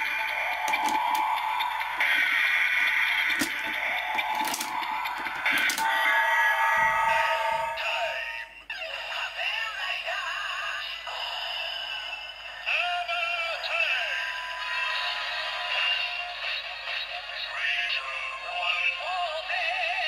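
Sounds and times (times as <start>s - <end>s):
plastic clicks: 0.0s - 1.4s, 3.2s - 5.9s.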